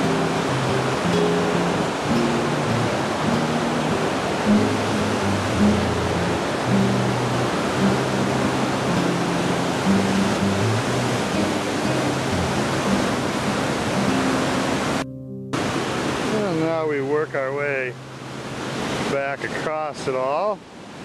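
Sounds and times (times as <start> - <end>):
river rapids rushing over rocks: 0.0 - 15.0, 15.6 - 21.0
low steady tones shifting pitch: 0.0 - 18.5.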